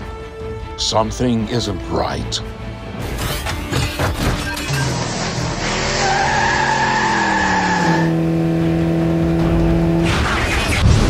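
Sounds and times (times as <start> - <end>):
tyres squealing in a skid: 4.5 - 8.2.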